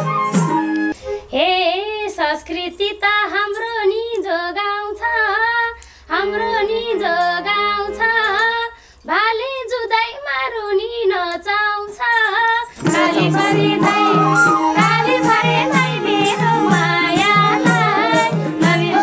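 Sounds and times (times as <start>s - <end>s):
bamboo flute: 0.0s - 1.7s, 12.8s - 19.0s
woman singing folk melody: 1.3s - 19.0s
hand drum: 12.8s - 19.0s
harmonium: 12.8s - 19.0s.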